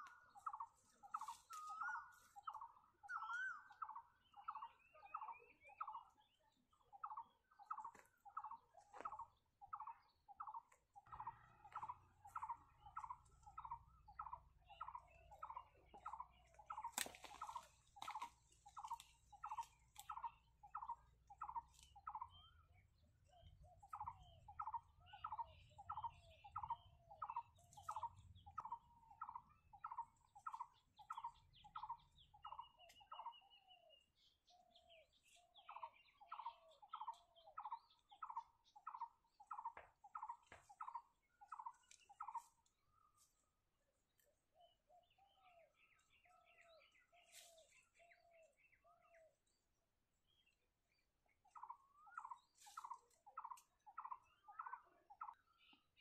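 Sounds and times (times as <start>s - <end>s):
bird calling: 0.0s - 6.1s, 7.0s - 43.4s.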